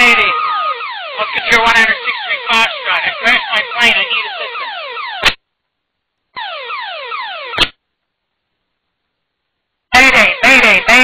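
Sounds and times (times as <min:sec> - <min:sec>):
wailing emergency alarm over radio: 0:00.0 - 0:05.3, 0:06.4 - 0:07.6.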